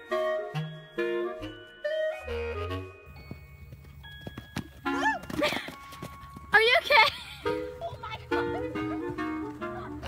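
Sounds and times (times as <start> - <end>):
horse hoofbeats on sand: 3.2 - 6.9.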